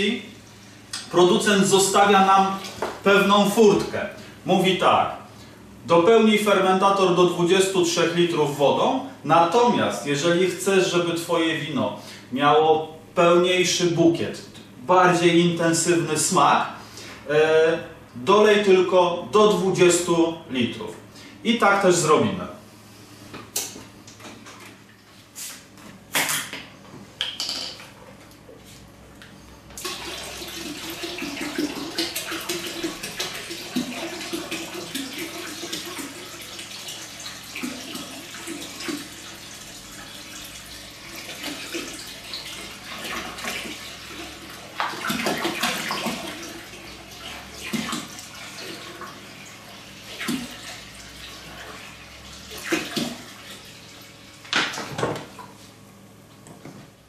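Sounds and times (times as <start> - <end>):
water pouring into plastic bucket: 29.8 - 49.2.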